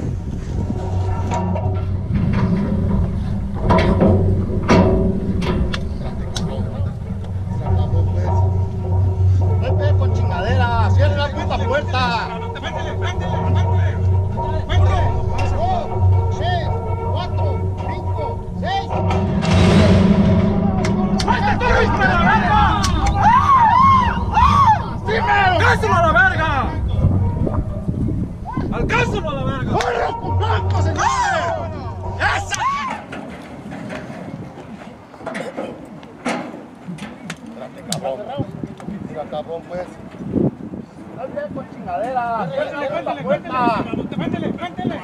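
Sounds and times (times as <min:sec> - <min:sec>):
background music: 0:00.0 - 0:33.9
voices: 0:00.0 - 0:45.0
starting gate clattering open: 0:00.6 - 0:28.2, 0:30.4 - 0:37.2
sharp knocks: 0:00.7 - 0:12.6, 0:13.3 - 0:27.9
sharp knocks and clicks: 0:01.3 - 0:09.3
people talking: 0:02.3 - 0:33.2, 0:33.9 - 0:45.0.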